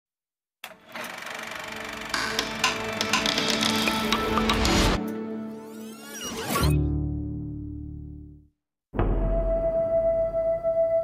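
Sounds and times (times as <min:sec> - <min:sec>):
music: 0:02.1 - 0:11.0.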